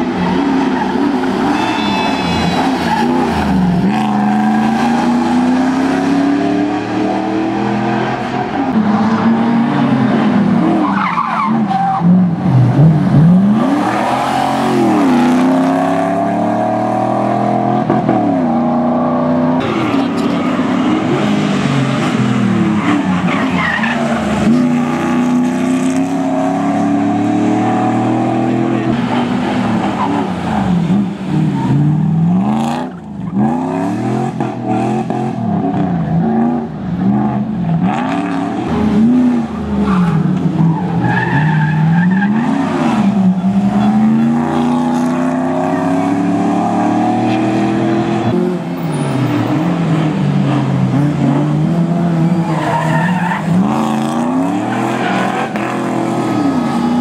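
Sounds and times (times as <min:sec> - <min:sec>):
rally car engine revving: 0:00.0 - 0:57.0
tyre squeals: 0:00.2 - 0:03.4.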